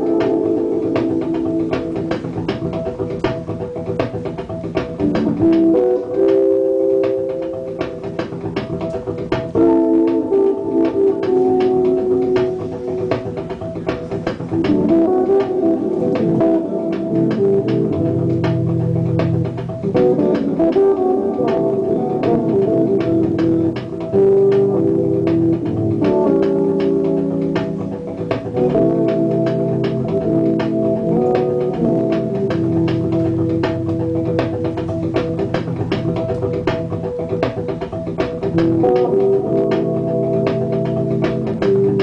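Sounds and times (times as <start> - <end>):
organ-like keyboard chords: 0.0 - 42.0
steady ticking beat: 0.0 - 42.0.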